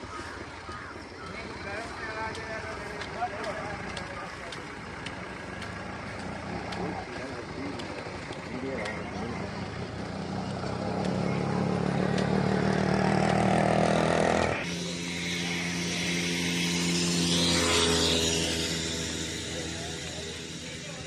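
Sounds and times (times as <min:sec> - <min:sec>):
vehicle engines droning: 0:00.0 - 0:21.0.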